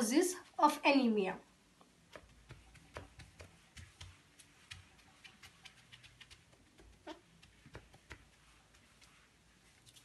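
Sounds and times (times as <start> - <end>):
eraser wiping whiteboard: 7.4 - 10.0.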